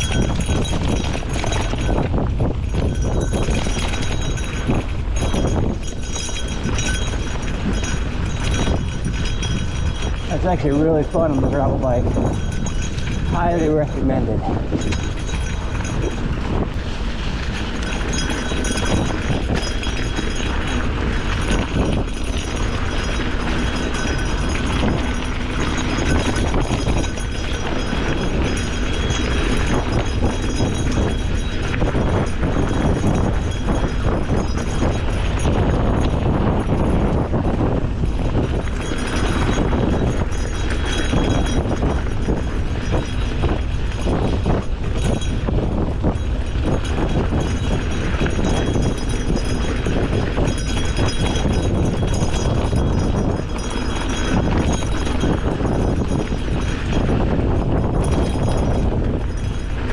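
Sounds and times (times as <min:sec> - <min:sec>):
bike rattling over bumps: 0:00.0 - 0:59.9
bike tyres rolling on dirt: 0:00.0 - 0:59.9
wind on microphone: 0:00.0 - 0:59.9.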